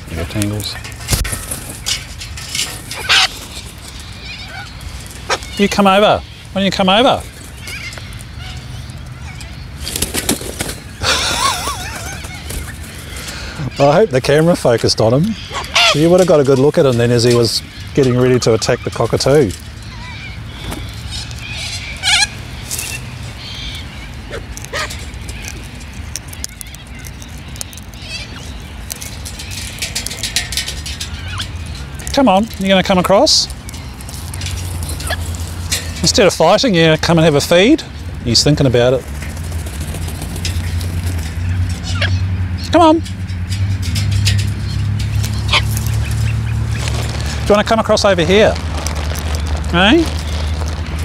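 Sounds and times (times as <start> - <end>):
parrot harsh squawk: 3.0 - 3.3, 15.4 - 16.0
man laughing: 11.0 - 12.3
beak clicking and tapping: 22.6 - 36.1.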